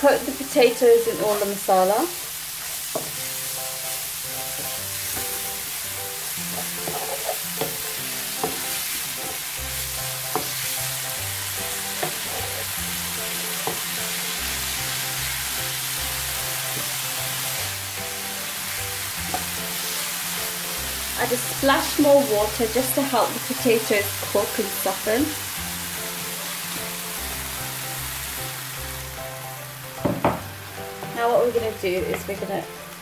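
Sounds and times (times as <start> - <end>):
potato strips sizzling in oil: 0.0 - 33.0
wooden spoon knocking pan: 30.0 - 30.5.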